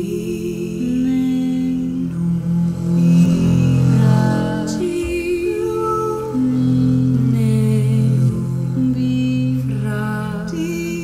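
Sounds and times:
double bass: 0:00.0 - 0:11.0.

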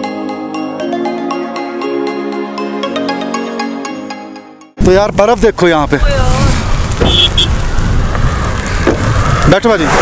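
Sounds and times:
wind buffeting microphone: 0:04.8 - 0:10.0.

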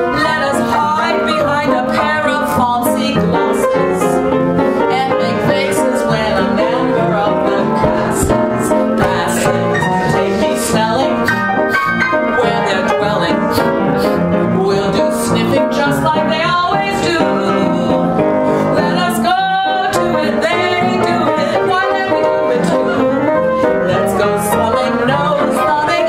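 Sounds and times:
ragtime upright piano: 0:00.0 - 0:26.0
woman singing: 0:00.0 - 0:26.0.

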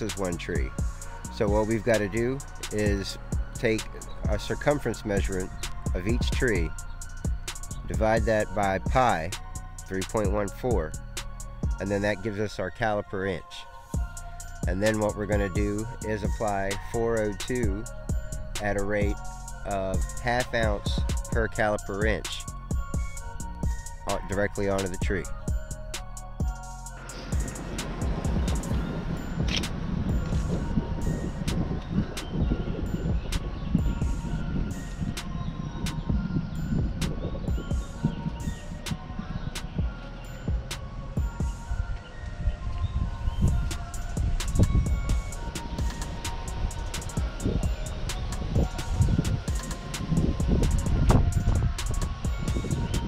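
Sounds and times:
music with steady beat: 0:00.0 - 0:12.0, 0:13.8 - 0:42.3, 0:43.1 - 0:53.0.

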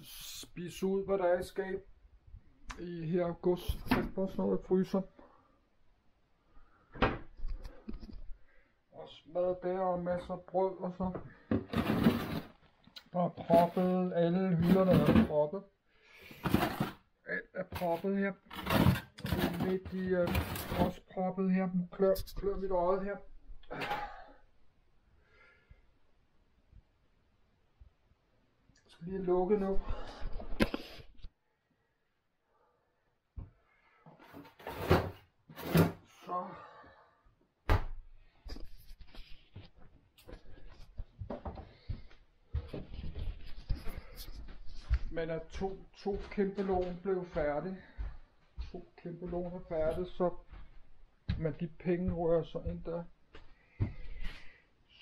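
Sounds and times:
plastic drawer scraping open: 0:11.6 - 0:12.5, 0:14.6 - 0:15.3, 0:16.4 - 0:17.0, 0:18.5 - 0:21.0, 0:34.3 - 0:36.0.

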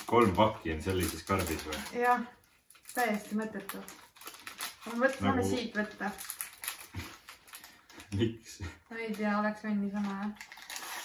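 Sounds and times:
plastic wrappers crinkling: 0:00.0 - 0:08.3, 0:09.0 - 0:11.0.

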